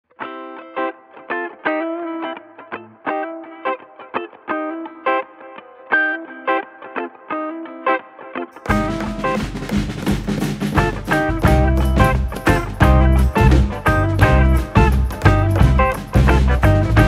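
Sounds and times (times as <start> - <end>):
plucked melody music: 0.2 - 17.0.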